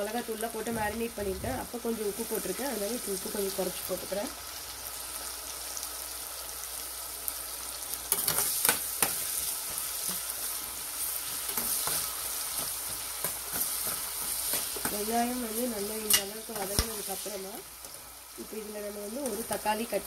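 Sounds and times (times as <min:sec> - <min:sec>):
onions sizzling in hot oil: 0:00.0 - 0:20.0.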